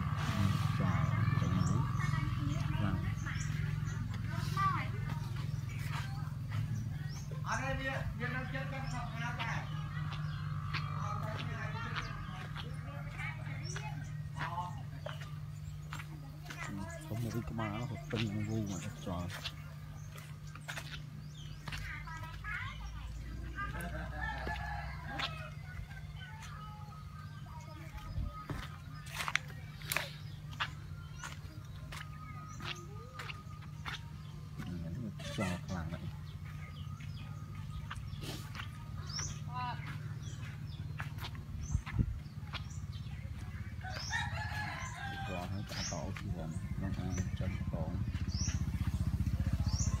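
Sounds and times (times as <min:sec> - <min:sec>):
electric air pump throbbing: 0:00.0 - 0:06.8
bird chirping: 0:00.0 - 0:50.0
rooster crowing: 0:24.0 - 0:26.1, 0:43.8 - 0:45.8.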